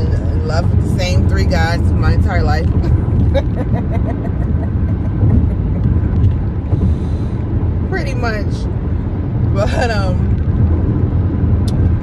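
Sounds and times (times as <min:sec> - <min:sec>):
car road and engine rumble: 0:00.0 - 0:12.0
person laughing softly: 0:02.8 - 0:06.2.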